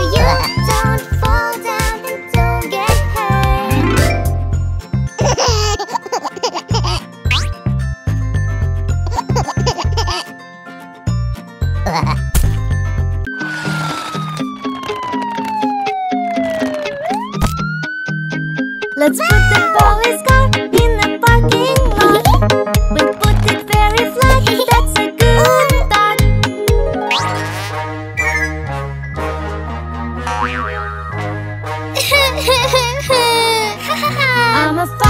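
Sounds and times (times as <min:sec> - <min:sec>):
children's music with steady beat: 0:00.0 - 0:07.4, 0:19.0 - 0:28.6
cartoon boing sound effect: 0:07.3 - 0:07.5, 0:27.0 - 0:27.4, 0:30.3 - 0:31.1
cartoon whistling sound effect: 0:28.2 - 0:28.6.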